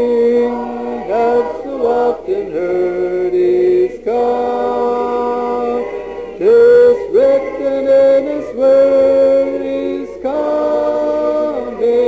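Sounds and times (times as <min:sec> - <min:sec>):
voices singing a hymn a cappella: 0:00.0 - 0:12.0.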